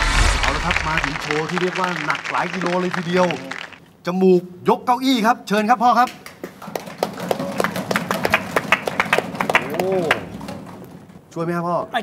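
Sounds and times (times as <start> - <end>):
people clapping: 0.0 - 3.9, 6.1 - 10.9.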